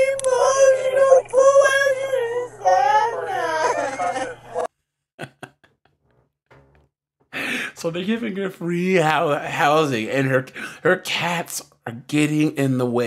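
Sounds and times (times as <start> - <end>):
woman crying in wails: 0.0 - 4.7.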